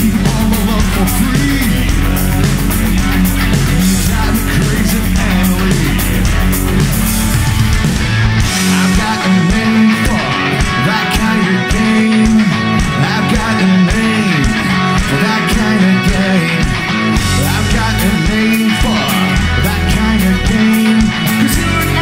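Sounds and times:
bass guitar: 0:00.0 - 0:22.0
drums: 0:00.0 - 0:22.0
electric guitars: 0:00.0 - 0:22.0.

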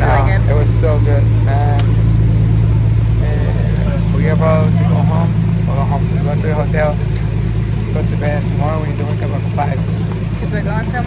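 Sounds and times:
boat engine idling: 0:00.0 - 0:11.0
faint voices: 0:00.0 - 0:11.0.

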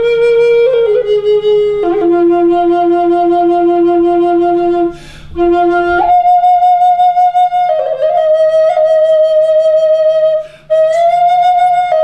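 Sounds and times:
flute holding low note: 0:00.0 - 0:12.0.

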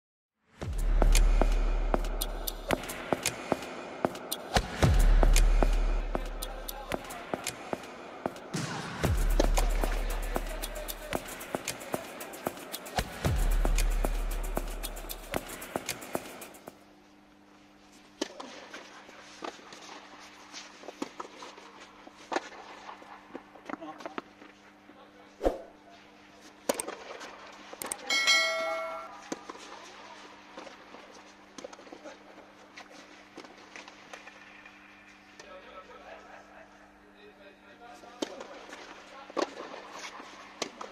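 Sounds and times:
music: 0:00.4 - 0:16.8
steady low hum: 0:00.6 - 0:18.2.

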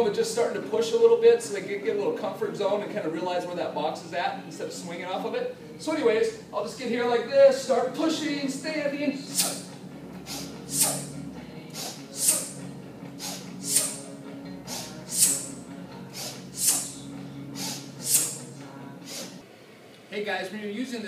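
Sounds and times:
man breathing forcefully: 0:09.3 - 0:11.1, 0:11.8 - 0:12.6, 0:13.2 - 0:19.4.

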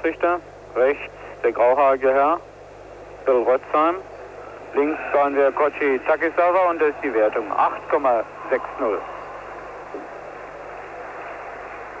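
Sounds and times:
sports arena ambience: 0:00.0 - 0:12.0.

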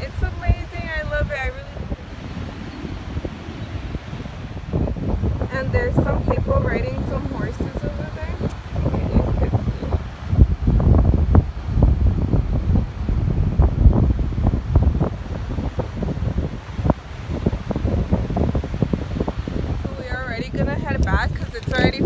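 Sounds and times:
wind buffeting microphone: 0:00.0 - 0:22.0
person speaking: 0:19.9 - 0:22.0.

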